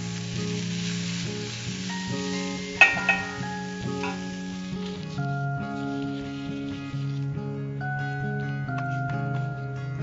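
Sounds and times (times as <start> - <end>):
vegetables sizzling in a pan: 0.0 - 8.6
soft background music: 0.0 - 10.0.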